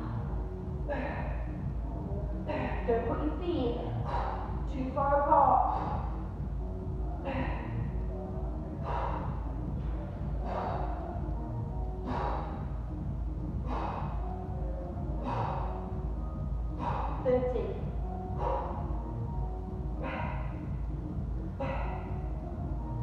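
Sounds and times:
background music: 0.0 - 23.0
woman's sharp exhalations: 13.7 - 14.1, 20.0 - 20.6.

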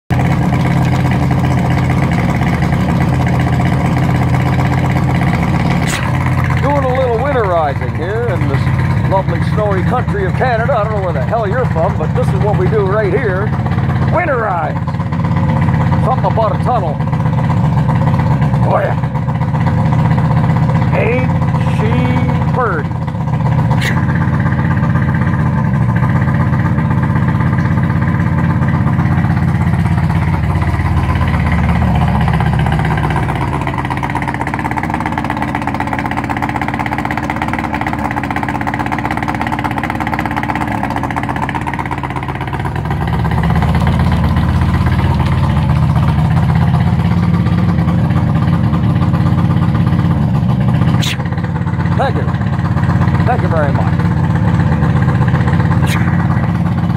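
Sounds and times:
outboard motor running: 0.1 - 56.9.

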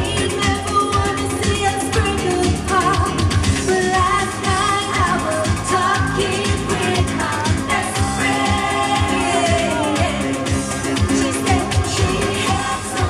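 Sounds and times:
dance-pop backing track: 0.0 - 13.0
woman singing into a microphone: 0.0 - 13.0.

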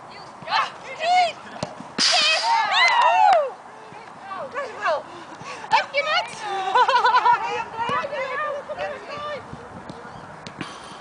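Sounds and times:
players shouting and whooping: 2.0 - 3.6.

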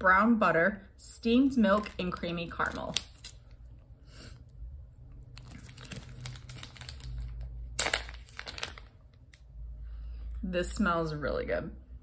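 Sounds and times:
plastic bag crinkling: 1.7 - 3.7, 5.2 - 9.4
bag seal crackling open: 5.3 - 9.4.

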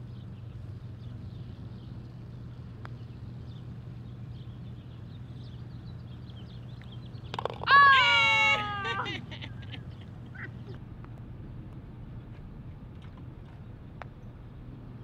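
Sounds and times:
steady low hum: 0.0 - 15.0
putter tapping golf ball: 6.8 - 7.8
person whooping: 7.7 - 9.4.

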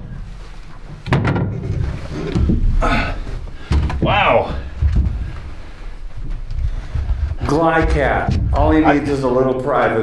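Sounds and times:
person climbing onto wooden box: 0.7 - 9.2.

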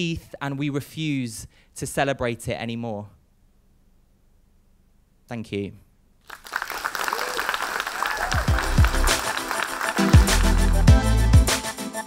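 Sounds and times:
audience applause: 6.2 - 11.0
electronic music with bass drum: 8.3 - 12.0.

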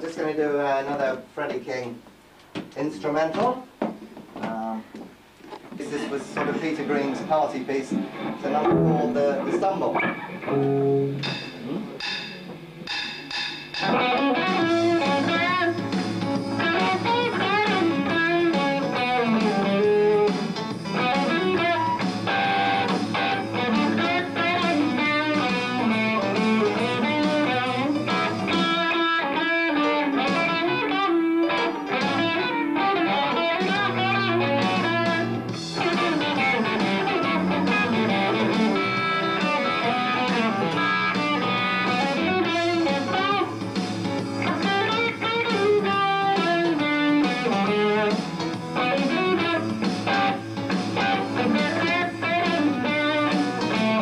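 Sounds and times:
electric guitar blues runs: 5.4 - 12.1, 13.8 - 54.0.

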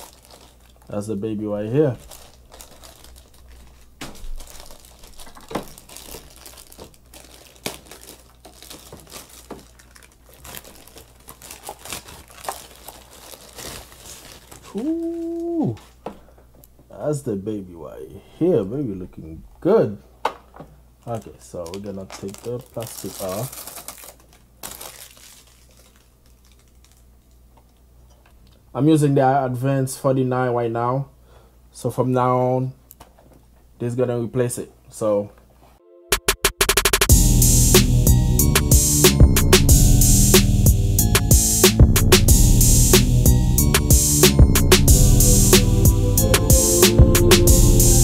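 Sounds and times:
plastic wrapping crinkling: 0.0 - 16.1, 20.4 - 27.8
plastic clicks and rustles: 2.6 - 13.2, 20.2 - 28.6.

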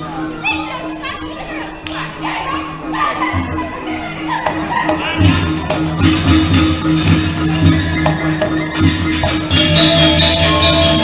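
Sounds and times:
children's and onlookers' voices: 0.0 - 11.0
music with low tone: 0.0 - 11.0.

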